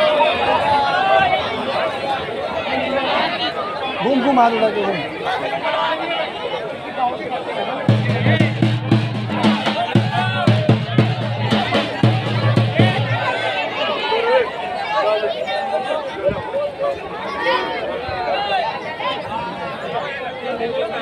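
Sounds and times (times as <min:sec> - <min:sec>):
crowd chatter: 0:00.0 - 0:21.0
drum beaten in fast strokes: 0:07.9 - 0:13.6.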